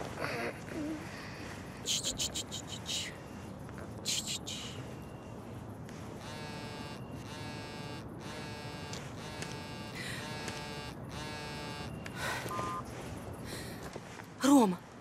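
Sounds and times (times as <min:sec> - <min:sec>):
smartphone vibrating: 0:06.2 - 0:12.9.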